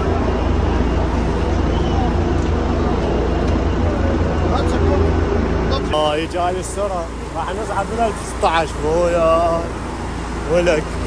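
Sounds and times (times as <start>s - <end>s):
indistinct voices talking: 0.0s - 11.0s
low outdoor rumble: 0.0s - 11.0s.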